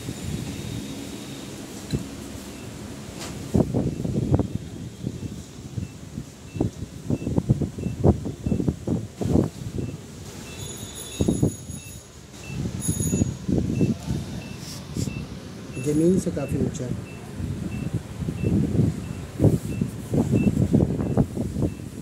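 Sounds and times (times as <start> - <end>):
short electronic beeps: 5.2 - 8.7, 9.8 - 21.9.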